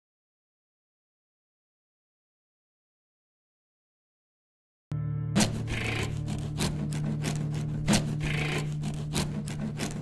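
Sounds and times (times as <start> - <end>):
metal tool scraping plaster wall: 5.4 - 10.0.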